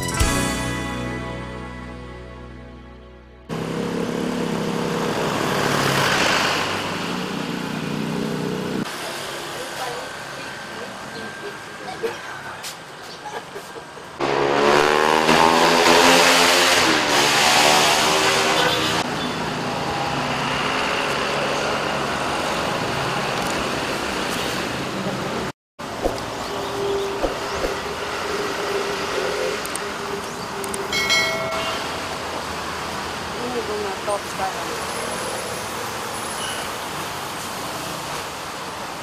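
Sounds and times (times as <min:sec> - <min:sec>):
road noise hum: 0:03.4 - 0:39.0
vehicle passing close by: 0:03.5 - 0:09.0, 0:14.2 - 0:30.4.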